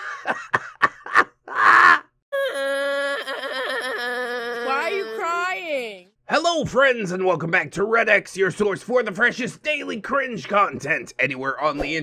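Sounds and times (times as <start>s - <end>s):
boy wailing: 1.6s - 6.0s.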